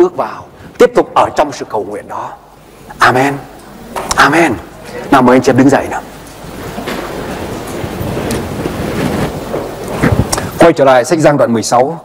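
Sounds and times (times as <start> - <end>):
clothing rustling and shuffling: 6.4 - 10.6.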